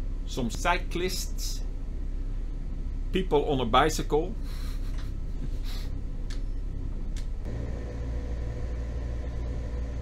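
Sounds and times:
boat engine droning: 6.1 - 10.0.

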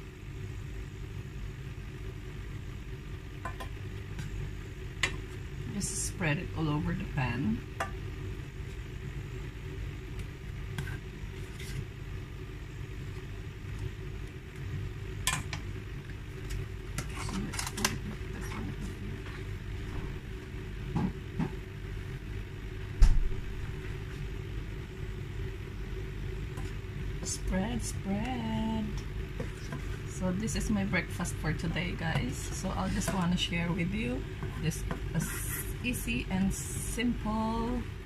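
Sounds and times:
low hum: 0.0 - 38.0.

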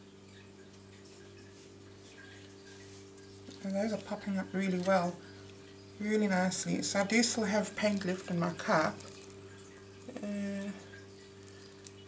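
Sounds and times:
low steady room hum: 0.0 - 12.0.

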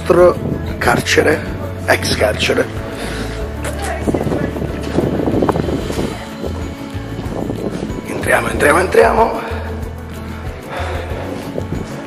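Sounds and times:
background music with bass beat: 0.0 - 12.0.

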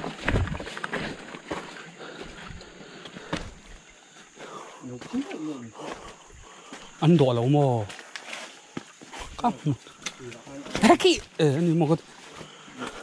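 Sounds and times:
footsteps on stones: 0.0 - 3.9, 4.9 - 11.4.

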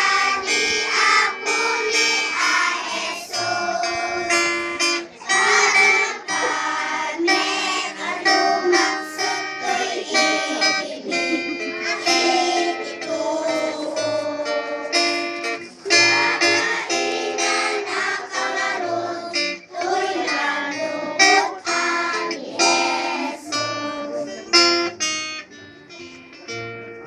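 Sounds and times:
children singing: 0.0 - 24.6
acoustic guitar: 0.0 - 27.0.

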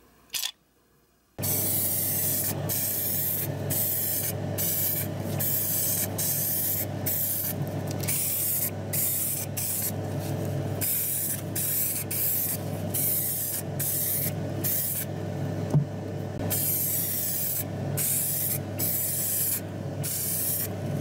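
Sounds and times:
steady low hum: 0.0 - 21.0
aerosol spray can hissing: 1.4 - 10.0, 10.8 - 15.1, 16.5 - 20.7.

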